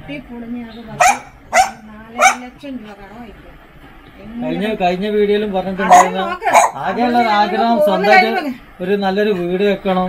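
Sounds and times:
woman talking: 0.0s - 3.5s, 5.8s - 8.6s.

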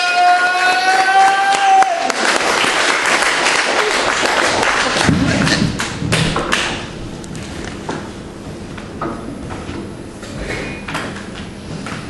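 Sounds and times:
audience applause: 0.0s - 6.7s.

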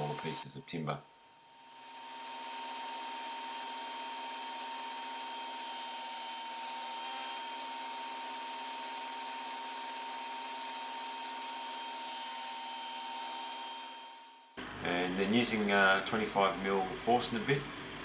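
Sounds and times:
table saw whining: 0.0s - 0.5s, 1.4s - 15.2s.

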